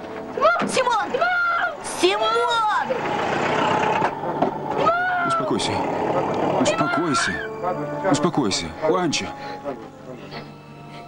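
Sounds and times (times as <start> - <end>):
child shouting: 0.4 - 3.0, 4.8 - 5.5, 6.6 - 7.5
old car pulling away: 2.4 - 7.4.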